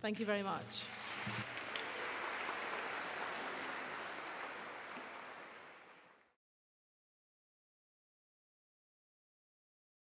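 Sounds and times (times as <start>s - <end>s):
audience applauding: 0.9s - 6.4s.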